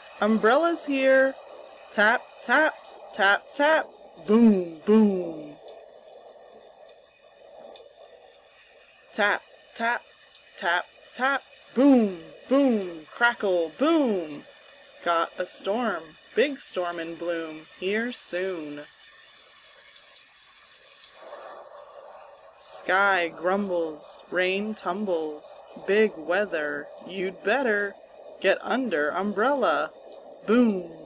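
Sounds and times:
faint hiss: 0:00.0 - 0:31.0
person speaking: 0:02.0 - 0:05.6, 0:09.1 - 0:10.0, 0:10.6 - 0:14.4, 0:15.0 - 0:18.8, 0:22.6 - 0:31.0.

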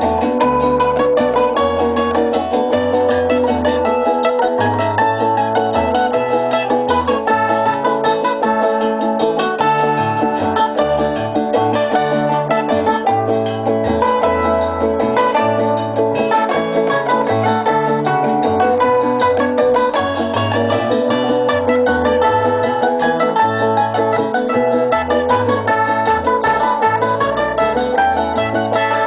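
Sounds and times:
folk band playing: 0:00.0 - 0:29.0
quick plucked strings: 0:00.0 - 0:29.0
stepping bass line: 0:00.0 - 0:29.0.

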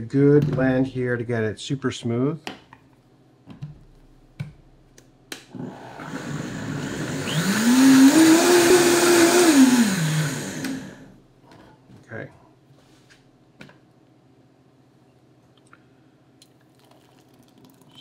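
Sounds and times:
blender motor whining: 0:05.5 - 0:11.1.

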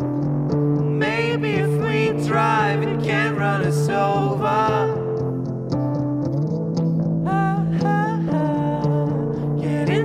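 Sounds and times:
electric guitar: 0:00.0 - 0:10.0.

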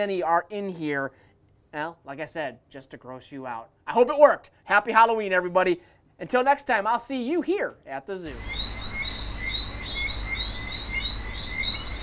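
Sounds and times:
short high chirping call: 0:08.3 - 0:12.0.

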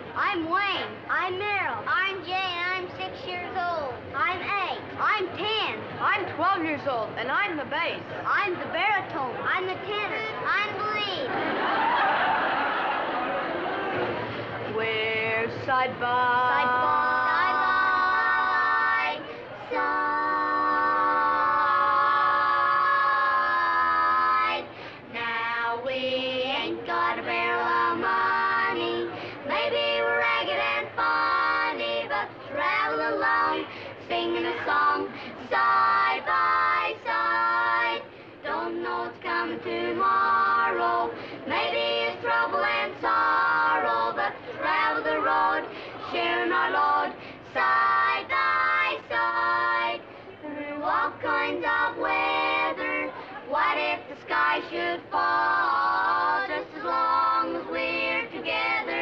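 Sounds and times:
boys singing in four-part harmony: 0:14.7 - 0:59.0.

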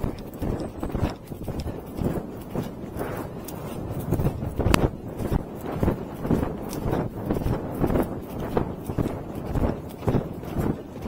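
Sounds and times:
horse hooves galloping on grass: 0:00.0 - 0:11.0.

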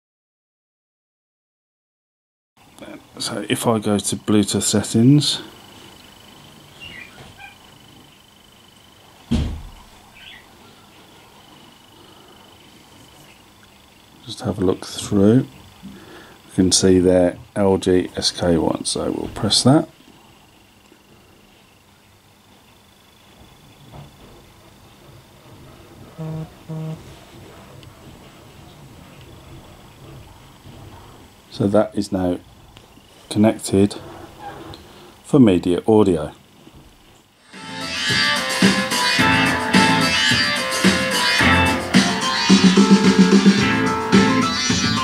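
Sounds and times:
faint high-pitched whine: 0:02.6 - 0:37.6
faint bird chirps: 0:06.0 - 0:09.0, 0:10.1 - 0:13.9
short low beeps: 0:26.2 - 0:27.0.

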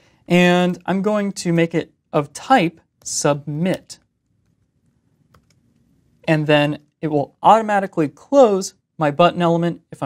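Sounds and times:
faint keyboard keystrokes: 0:03.8 - 0:05.9.

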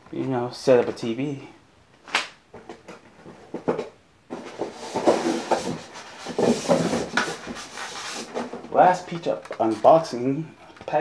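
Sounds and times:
styrofoam scraping against cardboard: 0:04.4 - 0:09.0.

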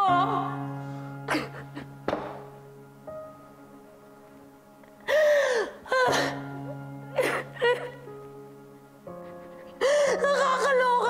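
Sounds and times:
soft background music: 0:00.0 - 0:11.0
woman sobbing loudly: 0:01.3 - 0:01.9, 0:05.0 - 0:08.1, 0:09.2 - 0:11.0.

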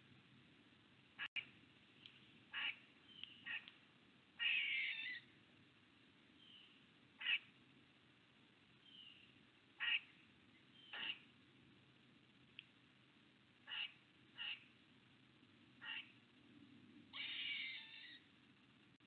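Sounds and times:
faint bird calls: 0:02.5 - 0:03.8, 0:04.4 - 0:05.3, 0:06.4 - 0:07.6, 0:08.8 - 0:11.3, 0:13.6 - 0:14.8, 0:15.8 - 0:16.2.

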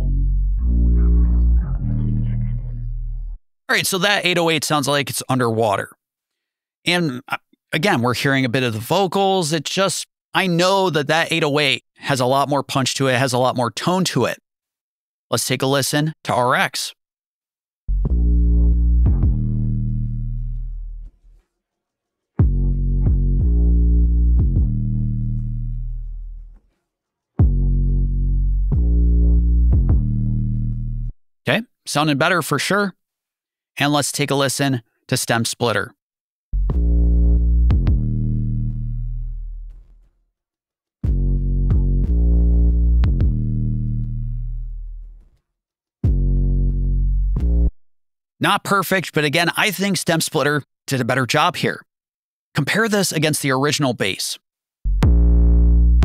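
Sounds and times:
deep bass hits ringing out: 0:17.9 - 0:21.0, 0:22.4 - 0:26.3, 0:27.4 - 0:31.1, 0:36.6 - 0:39.7, 0:41.1 - 0:44.6, 0:54.9 - 0:56.0.

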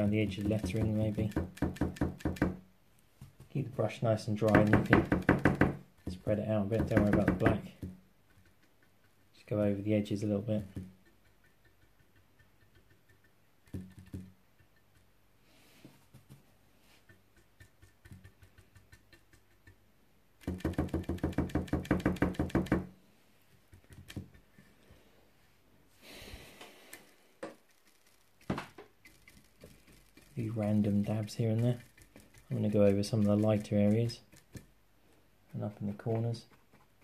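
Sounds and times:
paintbrush dabbing knocks: 0:03.2 - 0:09.1, 0:10.3 - 0:15.1
brush rasping: 0:26.9 - 0:34.7.

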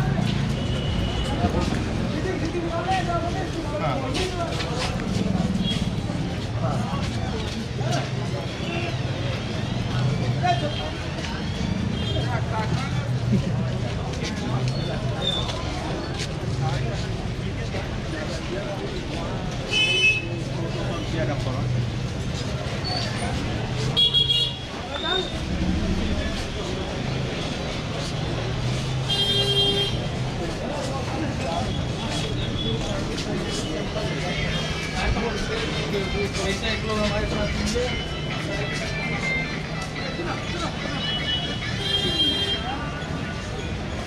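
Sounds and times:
chatter of passers-by: 0:00.0 - 0:44.0
traffic engine hum: 0:20.4 - 0:44.0
vehicle horn blasts: 0:29.1 - 0:30.0.

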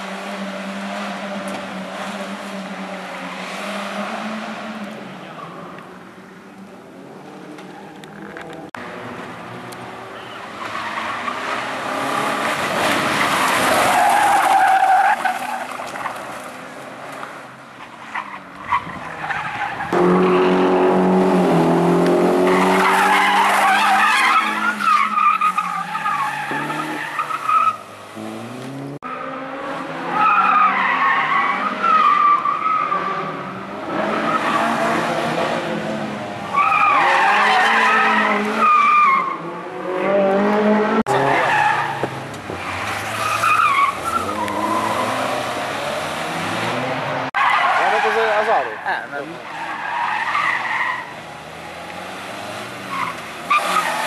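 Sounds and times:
tyres squealing: 0:22.5 - 0:27.9.

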